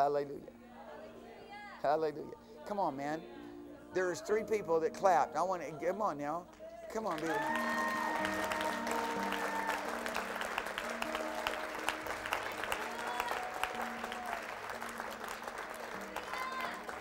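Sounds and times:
soft worship music: 0.0s - 17.0s
congregation clapping: 6.9s - 17.0s.

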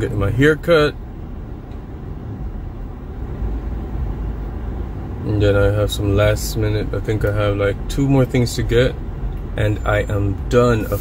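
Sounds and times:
car engine idling rumble: 0.0s - 11.0s.

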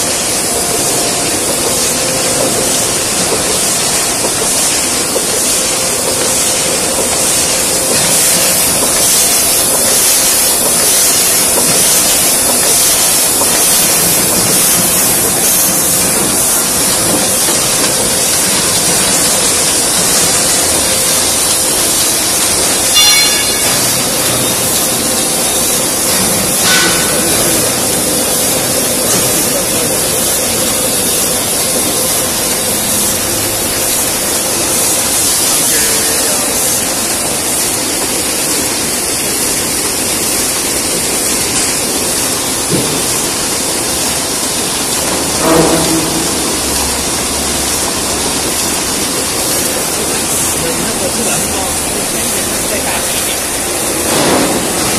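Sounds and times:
laminating machine running: 0.0s - 54.9s
sharp machine clacks: 0.0s - 54.9s.

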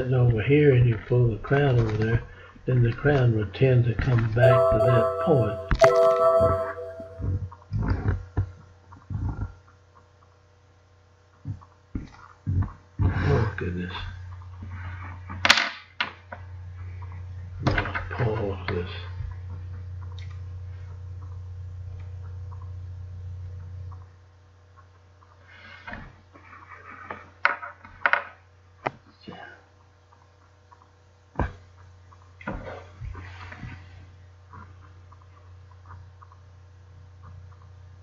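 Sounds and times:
low electrical hum: 12.5s - 25.3s.

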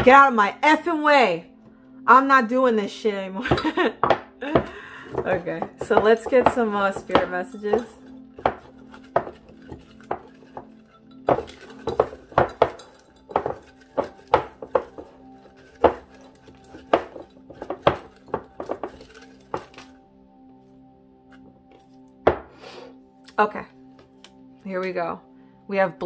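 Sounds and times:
quiet background music: 0.0s - 26.0s.

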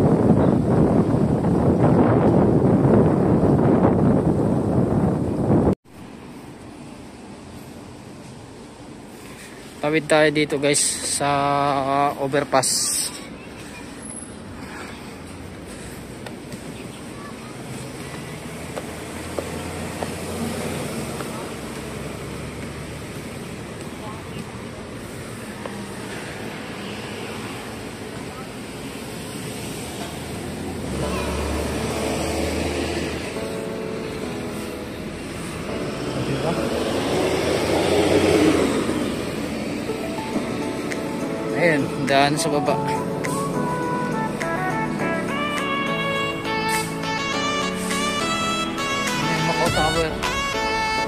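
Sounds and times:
vehicles passing: 0.0s - 51.0s
music: 39.9s - 51.0s.

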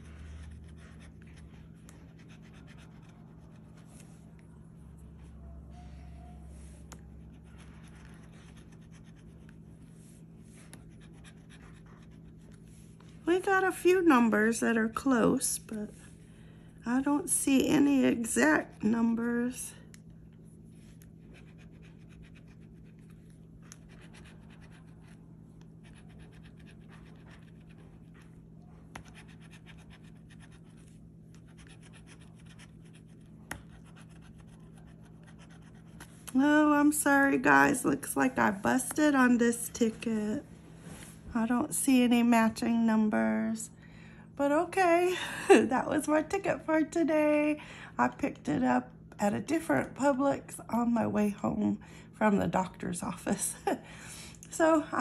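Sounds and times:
scratching lottery ticket: 0.0s - 4.3s, 6.6s - 13.7s, 20.7s - 36.2s
steady low hum: 0.0s - 55.0s.

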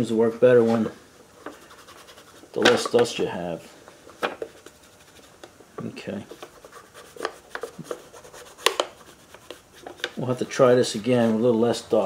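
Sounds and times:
fingertip rubbing paper: 1.5s - 2.5s, 6.4s - 10.5s.

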